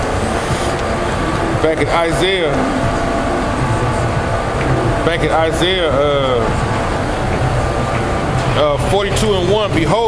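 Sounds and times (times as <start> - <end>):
faint low engine hum: 0.0 - 10.0
street traffic rumble: 0.0 - 10.0.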